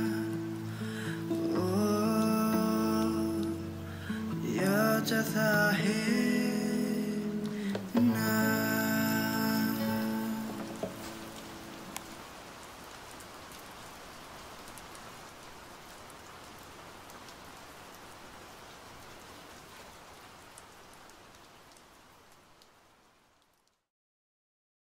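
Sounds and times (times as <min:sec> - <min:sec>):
raindrops ticking: 0:00.0 - 0:18.3, 0:20.1 - 0:23.8
soft rain hiss: 0:00.0 - 0:23.9.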